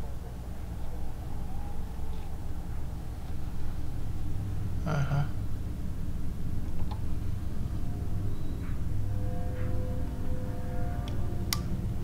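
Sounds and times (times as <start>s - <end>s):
eerie low drone music: 7.1s - 12.0s.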